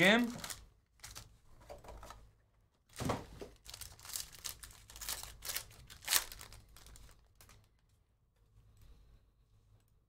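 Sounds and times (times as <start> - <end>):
foil pack crinkling and tearing: 0.1 - 1.3, 3.5 - 7.8.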